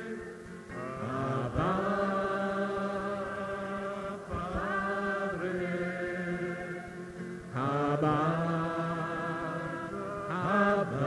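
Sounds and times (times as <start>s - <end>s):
congregation chanting: 0.0s - 11.0s.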